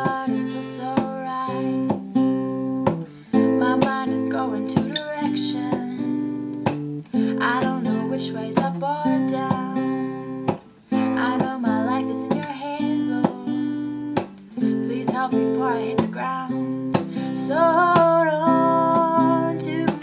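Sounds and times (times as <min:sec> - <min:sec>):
acoustic guitar strumming: 0:00.0 - 0:20.0
woman singing: 0:00.0 - 0:20.0.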